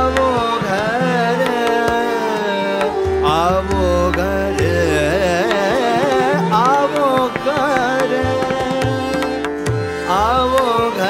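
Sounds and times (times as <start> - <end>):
harmonium notes: 0.0 - 11.0
man singing ornamented run: 0.0 - 11.0.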